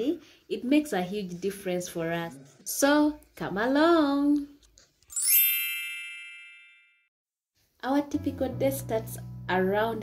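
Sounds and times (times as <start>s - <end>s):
woman speaking: 0.0s - 4.6s, 7.8s - 10.0s
shimmering chime: 5.1s - 7.1s.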